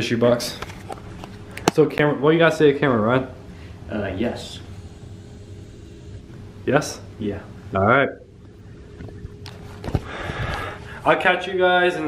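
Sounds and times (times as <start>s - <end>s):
faint room hum: 0.0s - 12.0s.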